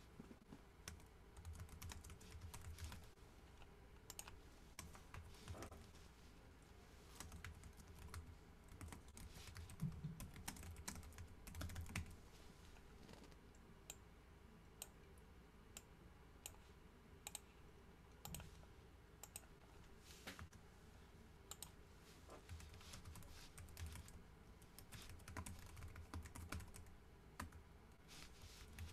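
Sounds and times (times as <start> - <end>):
typing on keyboard: 0.9 - 3.0, 7.2 - 12.1, 22.5 - 24.2, 24.8 - 27.6.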